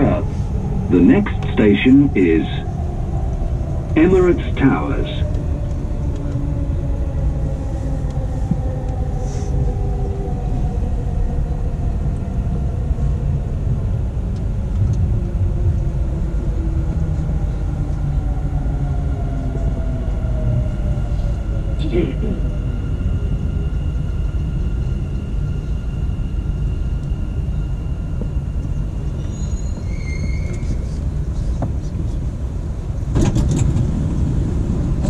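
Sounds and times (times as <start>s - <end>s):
train rumble inside carriage: 0.0s - 35.0s
brake squeal: 29.2s - 31.6s.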